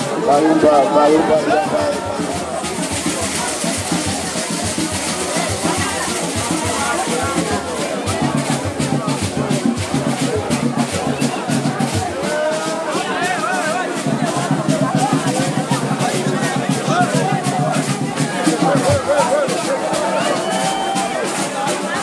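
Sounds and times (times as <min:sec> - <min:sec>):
music with drum beat: 0:00.0 - 0:22.0
people talking: 0:00.0 - 0:22.0.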